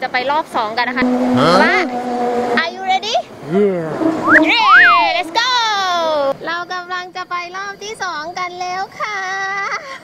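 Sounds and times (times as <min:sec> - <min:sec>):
high excited voice crying: 0:04.3 - 0:05.1.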